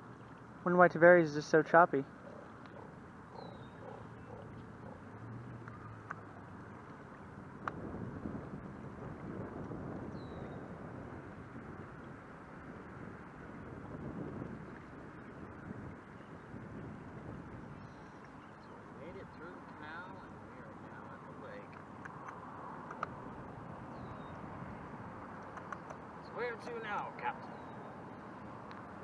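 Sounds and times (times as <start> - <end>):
water and wind rushing: 0.0 - 29.0
faint high chirp: 3.3 - 4.4.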